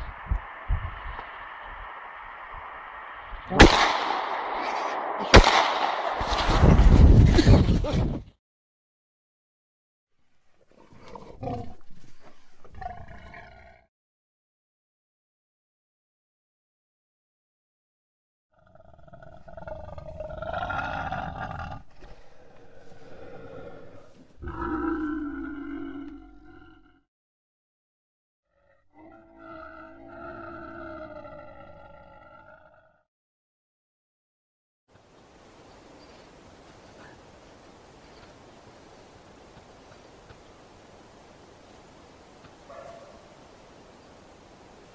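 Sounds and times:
wild boar grunting: 18.6 - 27.0
long drawn-out animal calls: 22.4 - 27.0, 28.5 - 33.0.

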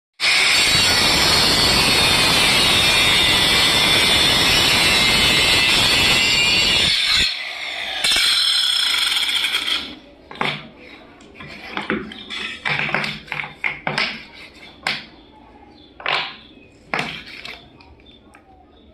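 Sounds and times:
electric marble cutter grinding: 0.2 - 10.0.

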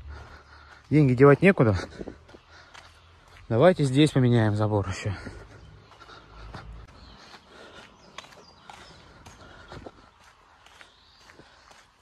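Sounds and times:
footsteps on dirt road: 0.0 - 12.0.

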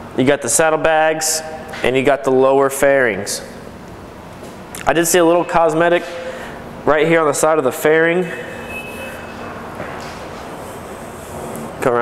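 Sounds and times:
steady background rush: 3.8 - 12.0.

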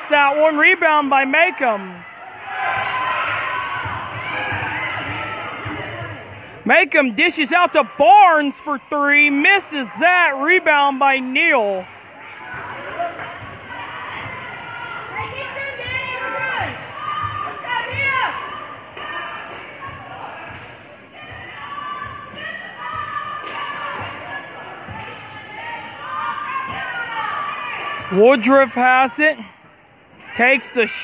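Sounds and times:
crowd voices: 0.0 - 31.0.

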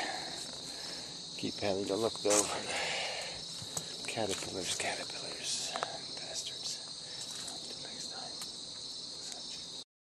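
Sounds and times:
insects trilling: 0.0 - 9.9
faint ticks: 5.6 - 6.0.

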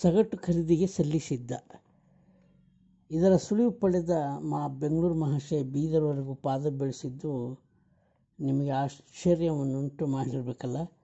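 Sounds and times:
person speaking: 0.0 - 1.9, 3.1 - 7.6, 8.4 - 11.0
faint steady hum: 0.0 - 11.0.

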